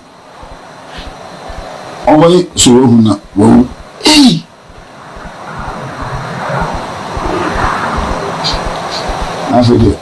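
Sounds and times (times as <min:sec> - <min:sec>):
even background noise: 0:00.0 - 0:10.0
sharp hiss: 0:00.2 - 0:02.4
man speaking: 0:02.0 - 0:04.6, 0:08.0 - 0:10.0.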